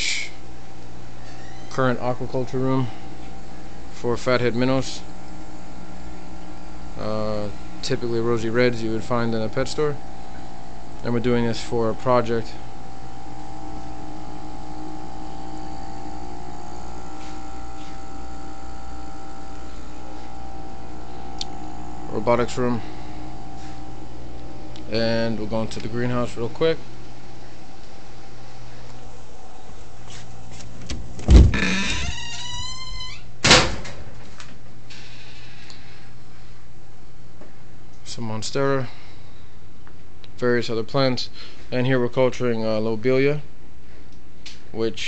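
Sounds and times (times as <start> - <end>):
aquarium air pumps humming: 0.0 - 45.0
door hinge squealing: 1.2 - 1.9, 31.3 - 33.3
door pushed open with thud: 30.8 - 32.7, 33.4 - 34.1
door banging shut: 30.8 - 34.2.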